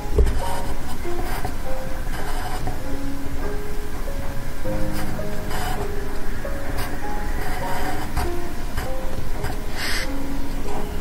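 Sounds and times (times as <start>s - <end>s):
soft background music: 0.0s - 11.0s
pencil scratching on paper: 0.4s - 2.9s, 6.7s - 10.1s.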